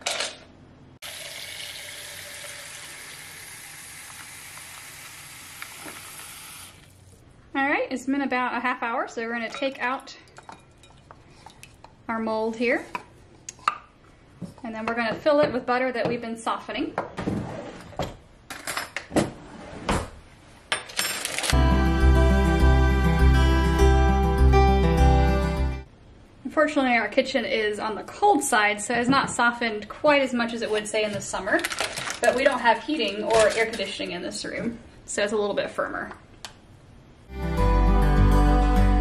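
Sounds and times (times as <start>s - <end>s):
faucet running into a bowl: 1.0s - 7.0s
paper crinkling: 31.6s - 33.7s.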